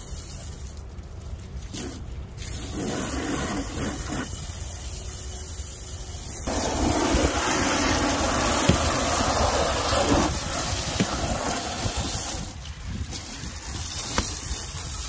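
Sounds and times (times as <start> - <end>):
hose water splashing: 0.0 - 15.0
hose jet spraying metal: 1.7 - 15.0.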